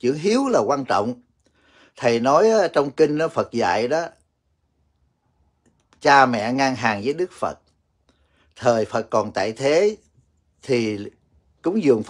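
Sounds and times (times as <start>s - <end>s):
man speaking: 0.0s - 1.3s, 1.9s - 4.2s, 6.0s - 7.6s, 8.6s - 12.0s
faint small clicks: 4.9s - 6.1s.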